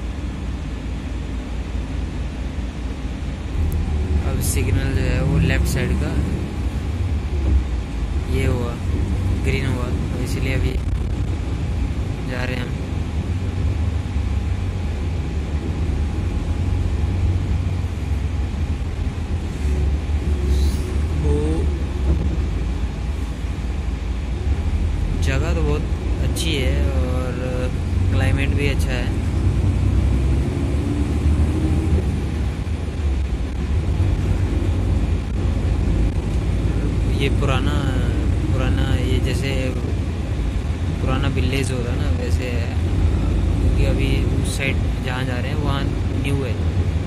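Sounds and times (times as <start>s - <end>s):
bus engine rumble: 0.0s - 47.0s
tyres on the road: 0.0s - 47.0s.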